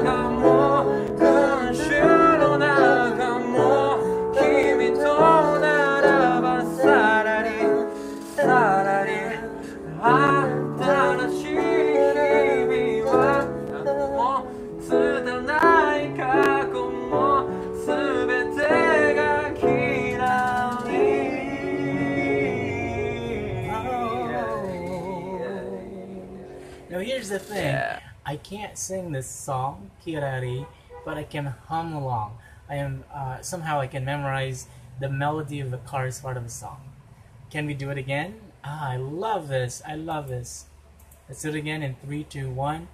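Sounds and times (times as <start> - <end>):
man singing a pop ballad: 0.0 - 26.5
upright piano chords: 0.0 - 27.9.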